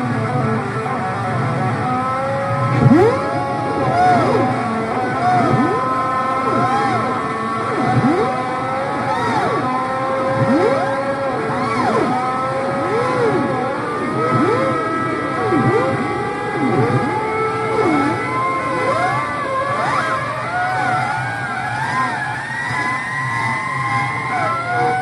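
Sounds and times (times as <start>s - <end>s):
swooping pitch glides: 0.8s - 25.0s.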